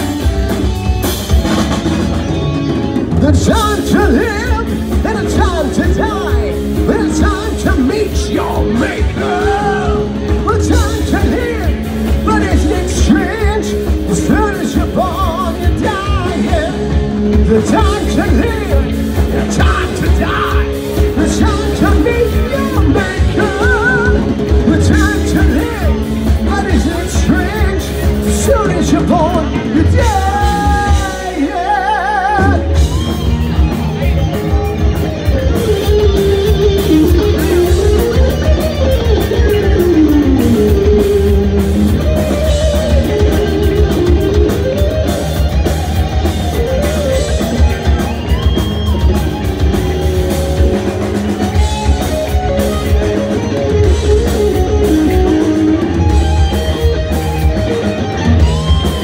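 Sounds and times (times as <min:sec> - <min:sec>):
heavy metal band playing: 0:00.0 - 0:59.0
lead guitar lines: 0:00.0 - 0:59.0.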